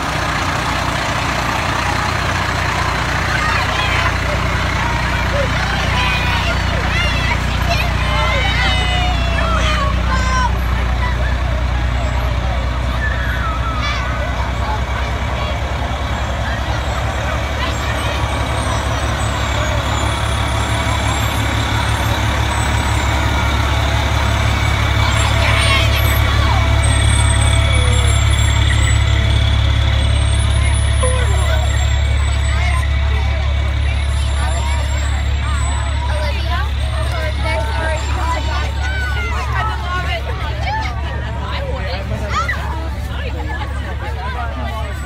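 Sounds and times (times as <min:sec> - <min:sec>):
fire engine diesel engines rumbling: 0:00.0 - 0:45.0.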